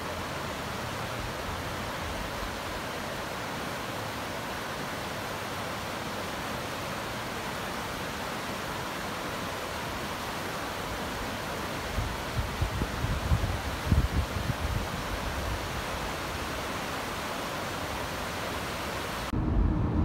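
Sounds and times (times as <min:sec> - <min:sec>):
floodwater rushing and churning: 0:00.0 - 0:19.3.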